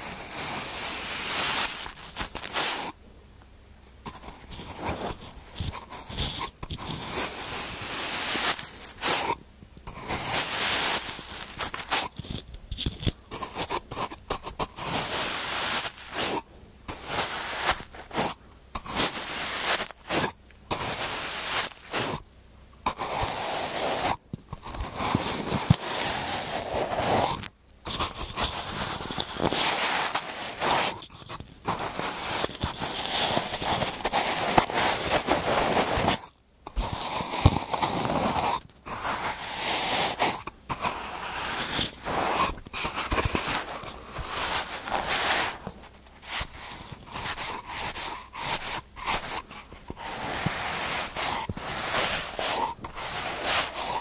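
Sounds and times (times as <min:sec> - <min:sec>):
sand crunching and crumbling: 0:00.0 - 0:03.0, 0:04.5 - 0:13.7, 0:14.7 - 0:22.1, 0:24.8 - 0:36.2, 0:40.9 - 0:54.0.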